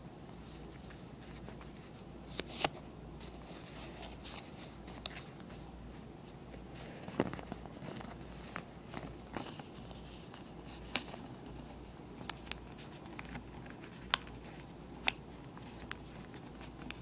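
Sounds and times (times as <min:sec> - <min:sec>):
faint low hum: 0:00.0 - 0:17.0
paper being folded: 0:06.5 - 0:17.0.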